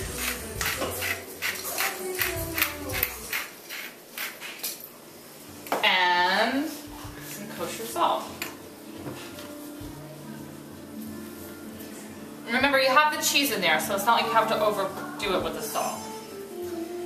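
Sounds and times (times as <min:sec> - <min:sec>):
pepper mill grinding: 0:00.0 - 0:04.8.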